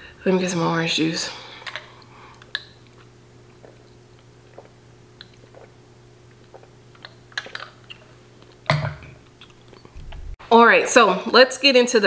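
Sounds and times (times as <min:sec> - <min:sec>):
low steady hum: 0:00.0 - 0:11.8.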